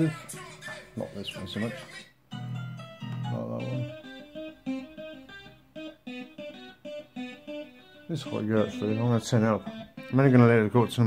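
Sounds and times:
plucked notes over speakers: 2.3s - 11.0s.

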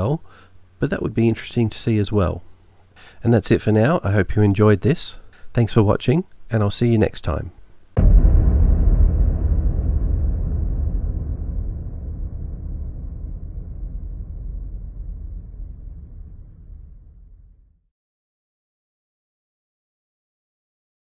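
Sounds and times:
deep rumbling boom: 8.0s - 17.8s.

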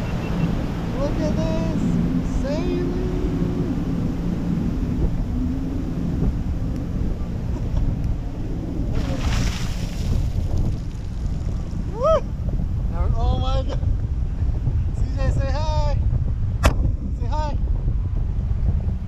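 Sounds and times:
boat engine running: 0.0s - 14.9s
churning wake water: 0.0s - 19.0s
wind rushing over microphone: 0.0s - 19.0s.

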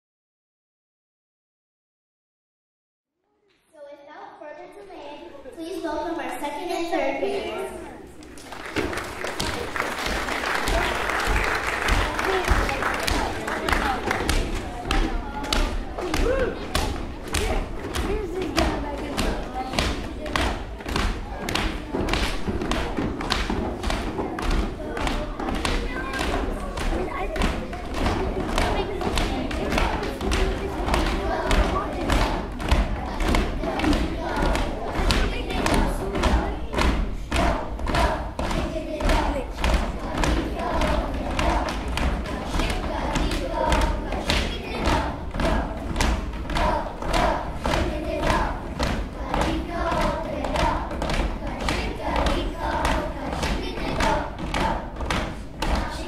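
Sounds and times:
children chanting: 5.1s - 56.0s.

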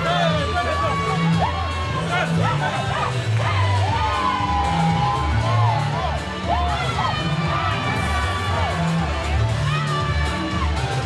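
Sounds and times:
crowd cheering and shouting: 0.0s - 11.0s
loud dance music: 0.0s - 11.0s.

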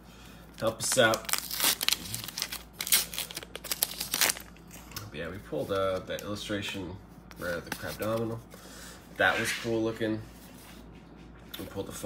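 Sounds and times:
foil wrapper tearing and crinkling: 0.6s - 4.5s.

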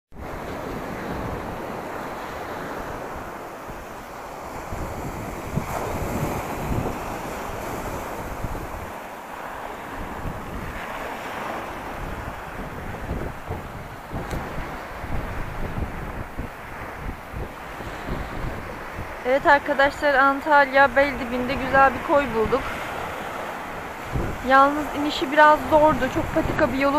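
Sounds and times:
wind buffeting microphone: 0.1s - 26.9s
small waves on pebble beach: 0.2s - 26.9s.

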